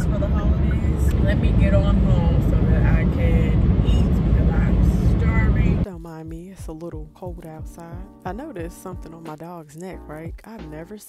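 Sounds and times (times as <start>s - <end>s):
car engine and road rumble: 0.0s - 5.9s
woman talking: 0.0s - 11.0s.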